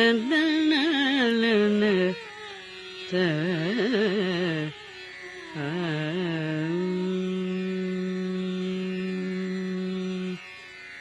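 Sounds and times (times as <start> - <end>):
woman singing a long note: 0.0 - 2.3, 3.1 - 4.9, 5.5 - 10.4.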